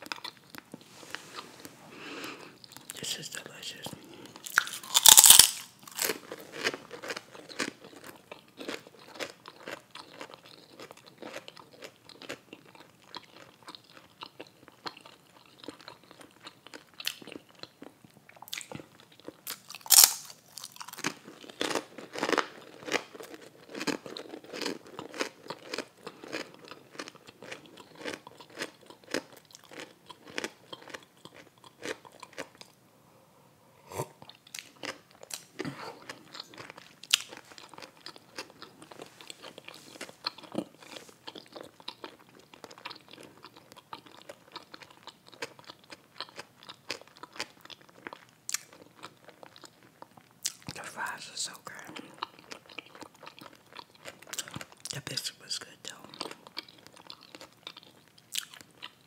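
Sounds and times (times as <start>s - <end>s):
chewing crunchy food: 0.0s - 32.8s, 34.0s - 59.0s
loud crunchy bites: 4.4s - 12.4s, 19.5s - 32.6s.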